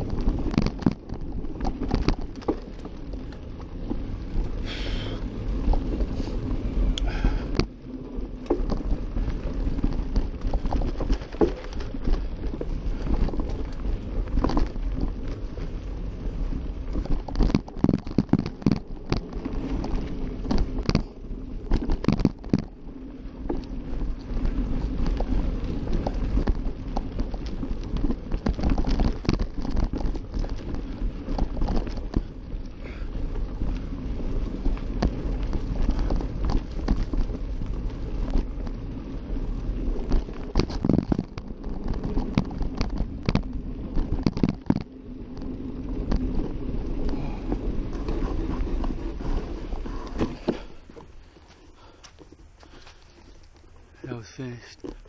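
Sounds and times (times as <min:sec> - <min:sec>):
bike rattling over bumps: 0:00.0 - 0:55.0
bike tyres rumbling on dirt: 0:00.0 - 0:55.0.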